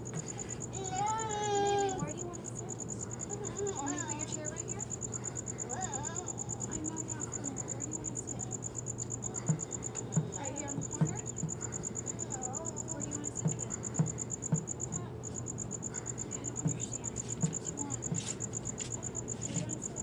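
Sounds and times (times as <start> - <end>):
insect trill: 0.0 - 20.0
short dull thumps: 9.4 - 11.7.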